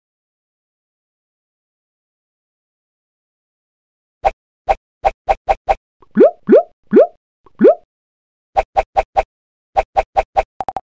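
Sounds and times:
cartoon pops: 0:06.0 - 0:07.8
rising bloops: 0:06.0 - 0:07.8.

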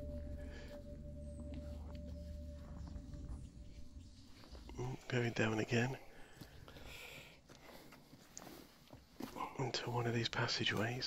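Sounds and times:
faint footsteps: 0:00.0 - 0:09.6.

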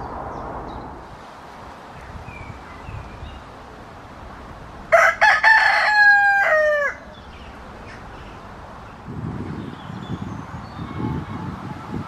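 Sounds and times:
rooster crowing: 0:04.9 - 0:07.2.

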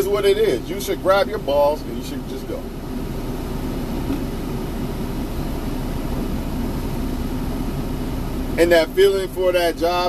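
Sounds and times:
faint held hum: 0:00.0 - 0:10.0
vehicle engine running: 0:00.0 - 0:10.0.

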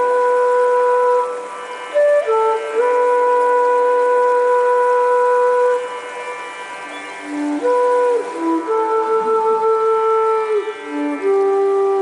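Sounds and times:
flute holding long note: 0:00.0 - 0:12.0.

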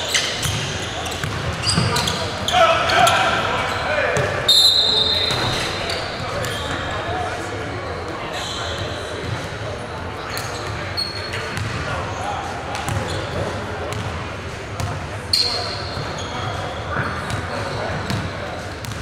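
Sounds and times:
sneaker squeaks: 0:00.0 - 0:07.2, 0:08.2 - 0:09.5, 0:10.2 - 0:14.0, 0:14.8 - 0:19.0
echoing voices: 0:00.0 - 0:18.8.

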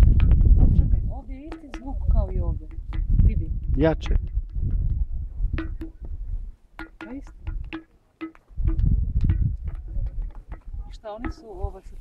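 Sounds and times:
stones knocking on ringing rock: 0:01.4 - 0:03.4, 0:04.0 - 0:06.2, 0:06.8 - 0:11.6.

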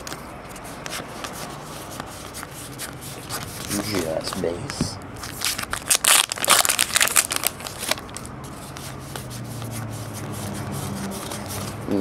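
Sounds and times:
card pack wrapper tearing: 0:05.3 - 0:08.3.

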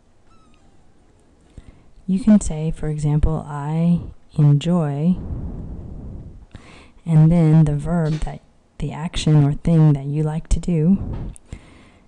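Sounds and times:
short high-pitched call: 0:00.3 - 0:01.0.

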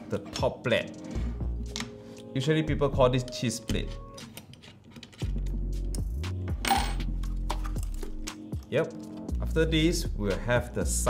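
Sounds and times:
metallic clicks of tool and screws: 0:04.2 - 0:06.0
music with deep bass line: 0:05.3 - 0:08.6.

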